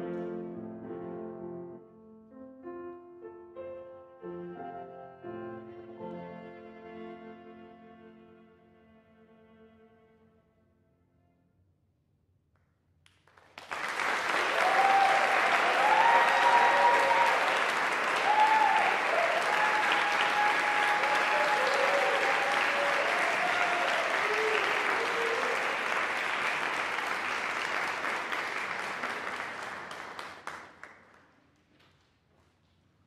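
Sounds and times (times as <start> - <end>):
audience applauding: 13.1 - 31.4
people cheering: 13.6 - 30.6.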